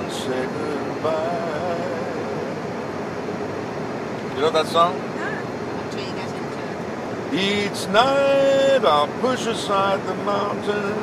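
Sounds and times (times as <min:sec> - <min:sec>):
road and engine noise in car: 0:00.0 - 0:11.0.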